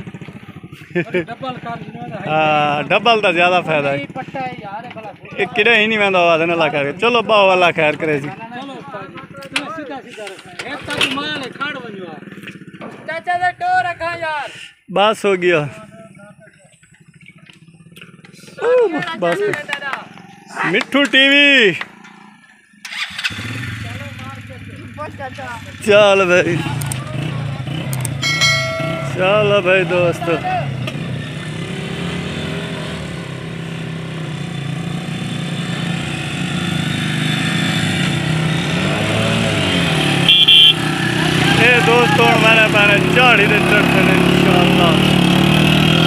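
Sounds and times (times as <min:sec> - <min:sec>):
voices shouting: 0:18.5 - 0:23.0, 0:40.1 - 0:45.0
man shouting: 0:18.6 - 0:19.6, 0:41.3 - 0:42.6.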